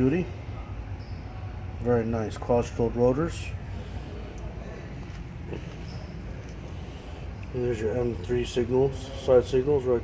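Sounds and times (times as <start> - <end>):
low background rumble and hum: 0.0 - 10.0.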